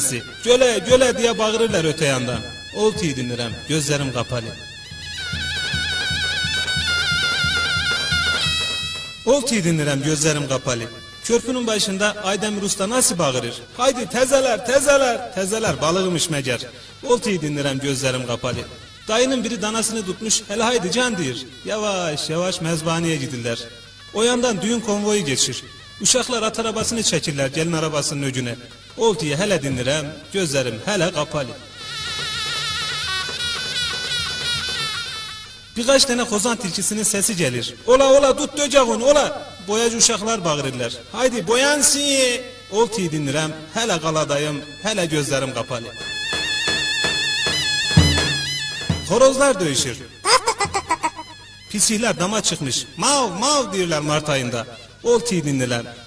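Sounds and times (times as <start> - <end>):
high reed wind instrument melody: 0.0 - 9.3, 18.2 - 27.4, 31.4 - 36.5, 42.5 - 54.4
steady drum beat: 0.0 - 21.8, 44.7 - 51.8
drum beat: 0.2 - 9.3, 45.9 - 49.5, 50.2 - 51.6.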